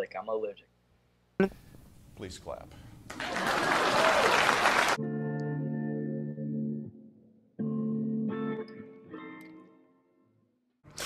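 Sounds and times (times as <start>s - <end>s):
audience applauding: 3.1s - 5.0s.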